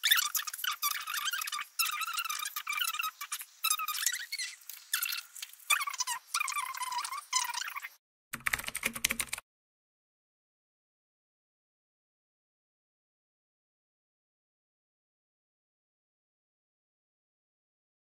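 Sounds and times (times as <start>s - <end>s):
high-pitched squeaky chattering voice: 0.0s - 8.0s.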